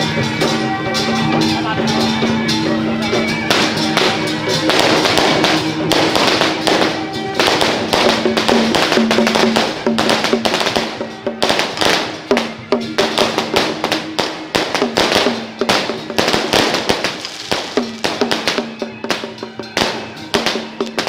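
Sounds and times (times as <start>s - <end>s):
hand drum: 0.0s - 21.0s
sharp percussion cracks: 0.0s - 21.0s.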